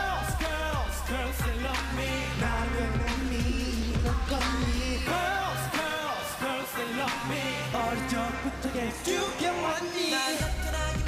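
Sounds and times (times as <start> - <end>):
dance track with male singing: 0.0 - 11.0.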